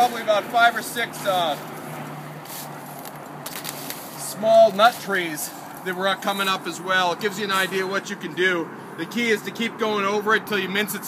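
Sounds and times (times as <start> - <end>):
hedge trimmer engine hum: 0.0 - 8.9
hiss of cutting brambles: 0.7 - 5.8.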